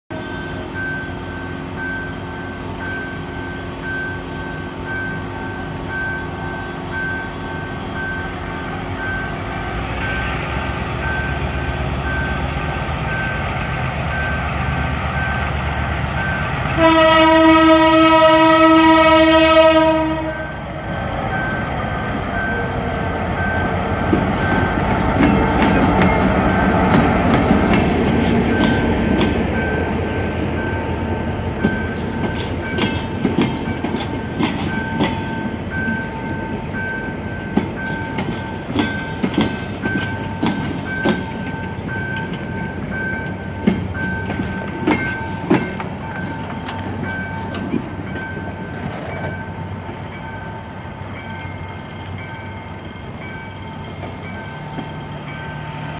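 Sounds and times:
level crossing warning beeps: 0.1s - 13.4s
train rolling past: 0.1s - 55.9s
locomotive horn blast: 16.6s - 20.6s
wheels clicking over rail joints: 24.0s - 29.7s, 37.4s - 49.4s.

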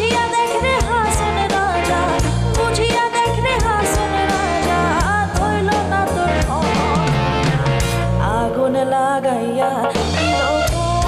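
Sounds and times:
live band playing folk song: 0.0s - 8.8s, 9.4s - 11.0s.

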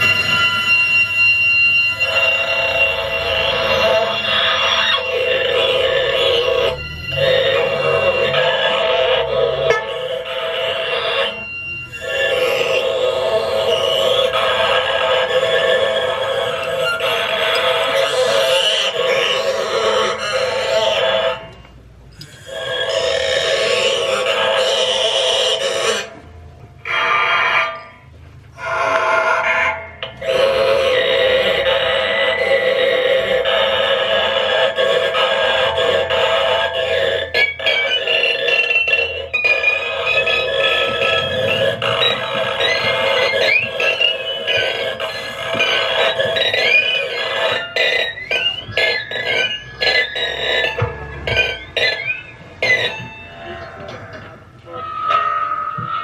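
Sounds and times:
high sliding warbling tones: 0.0s - 21.5s, 28.6s - 56.0s
dense sustained drone: 0.0s - 56.0s.

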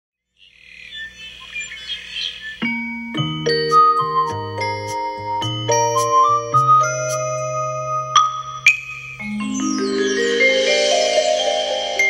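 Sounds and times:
birds chirping: 0.2s - 12.0s.

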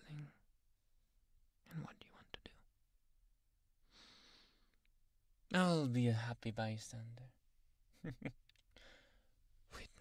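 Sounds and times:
person whispering: 0.0s - 0.4s, 1.6s - 2.7s, 9.7s - 10.0s
quiet breath: 3.8s - 4.9s, 8.7s - 10.0s.

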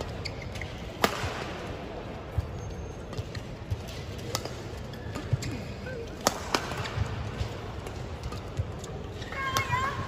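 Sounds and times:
shoes squeaking on court: 0.0s - 1.0s, 2.4s - 3.8s
rackets striking shuttlecock: 0.0s - 1.6s, 2.3s - 9.0s.

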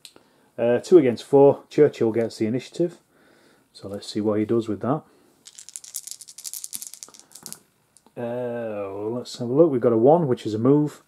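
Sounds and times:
dice clicking together: 5.4s - 8.1s.

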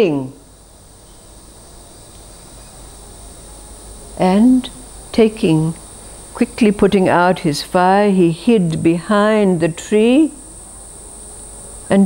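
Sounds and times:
faint low hum: 0.0s - 12.0s
high-pitched whine: 0.0s - 12.0s.

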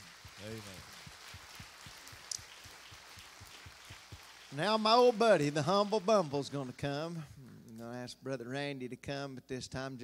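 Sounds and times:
crowd clapping softly: 0.0s - 8.0s.

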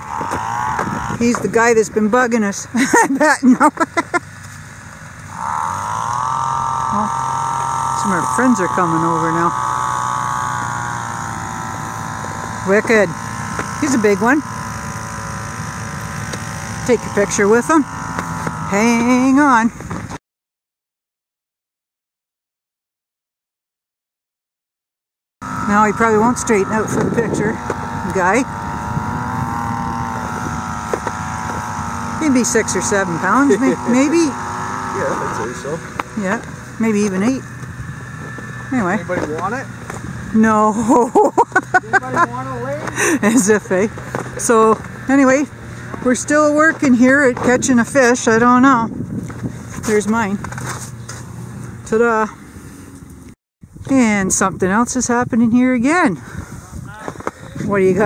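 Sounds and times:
snowmobile engine revving: 0.0s - 20.2s, 25.4s - 54.1s, 54.7s - 56.2s, 56.9s - 58.0s
wind buffeting microphone: 25.5s - 35.0s, 42.7s - 52.9s, 53.6s - 58.0s.

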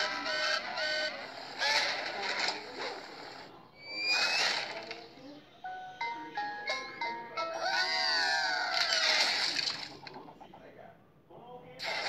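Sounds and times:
cartoon music: 0.0s - 1.8s, 5.8s - 9.0s.

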